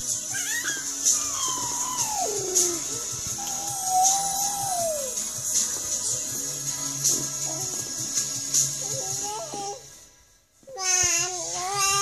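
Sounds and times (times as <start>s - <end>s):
background music with tambourine beat: 0.0s - 9.8s
baby girl singing wordlessly: 0.2s - 5.2s, 7.2s - 8.0s, 8.7s - 9.9s, 10.6s - 12.0s.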